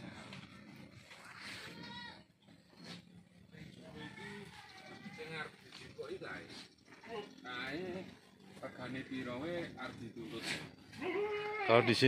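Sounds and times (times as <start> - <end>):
animal crying: 3.7 - 5.7, 10.8 - 12.0.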